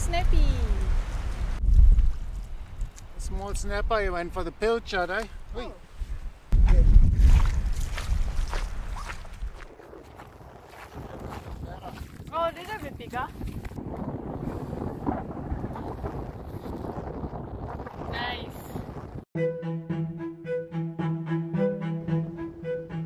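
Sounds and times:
wind buffeting microphone: 0:00.0 - 0:19.3.

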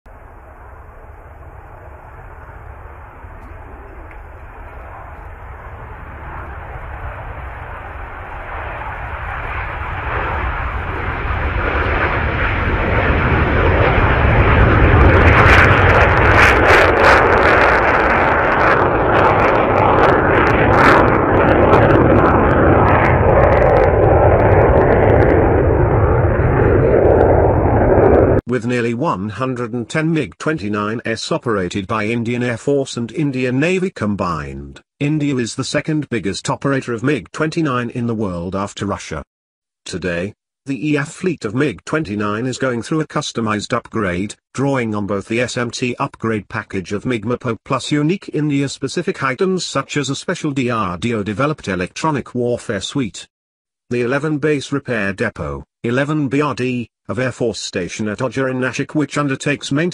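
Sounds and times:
jet engine crackling: 0:00.1 - 0:28.4
jet engines roaring: 0:00.1 - 0:28.4.

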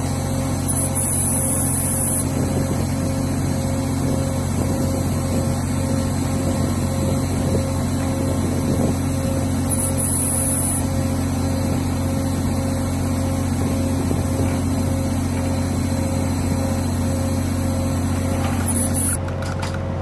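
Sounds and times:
ship machinery humming: 0:00.0 - 0:19.3.

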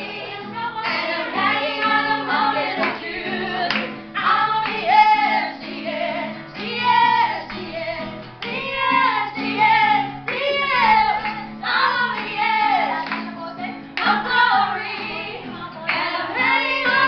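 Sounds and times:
strummed acoustic guitar: 0:00.0 - 0:17.0
women singing together: 0:00.0 - 0:17.0.

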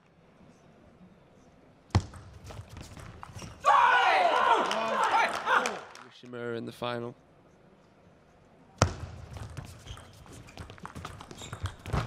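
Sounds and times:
player shouting: 0:03.6 - 0:05.9.

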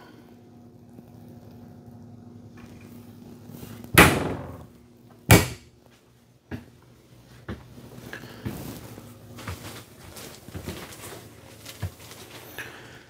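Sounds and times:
low steady hum: 0:00.0 - 0:13.0
wooden cabinet doors knocking shut: 0:04.0 - 0:04.7.

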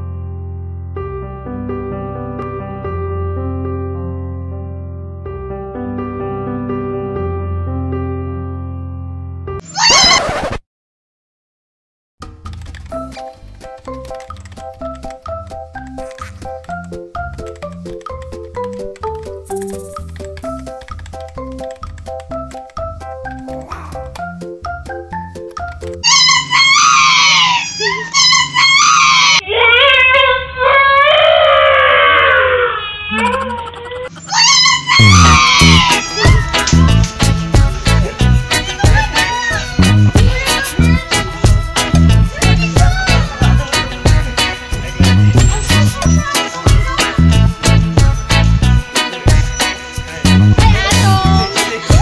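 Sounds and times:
light keyboard music: 0:00.0 - 0:09.6, 0:12.2 - 0:27.2, 0:34.3 - 0:52.0
woman shrieking laugh: 0:09.7 - 0:10.2, 0:46.0 - 0:47.3.

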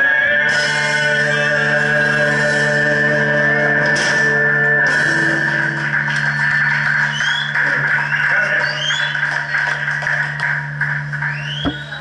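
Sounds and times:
electric guitars and bass drone: 0:00.0 - 0:12.0.

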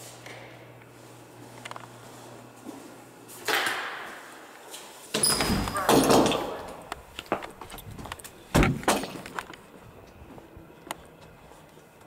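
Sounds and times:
footsteps on concrete: 0:07.0 - 0:08.4, 0:09.6 - 0:11.8.

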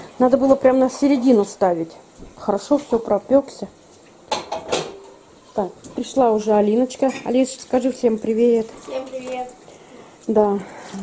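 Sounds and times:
dishes and cutlery clinking: 0:04.3 - 0:08.4.

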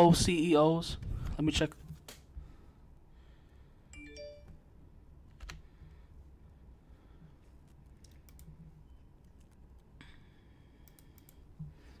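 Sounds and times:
electronic notification chime: 0:04.0 - 0:04.5.

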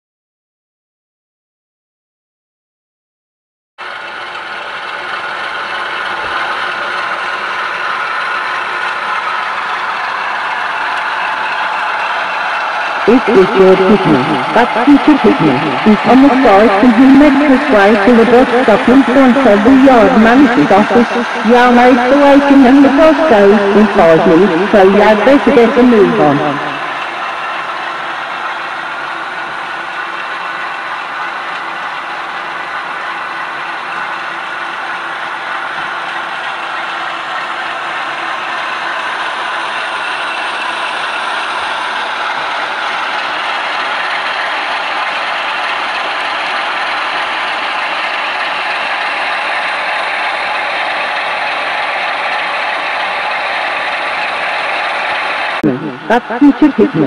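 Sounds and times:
model train motors whirring: 0:03.8 - 0:13.0.

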